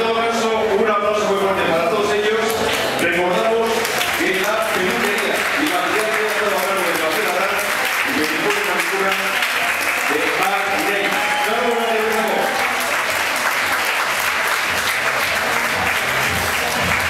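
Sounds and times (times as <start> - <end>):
audience applauding: 2.6 - 17.0
voice: 10.1 - 12.5.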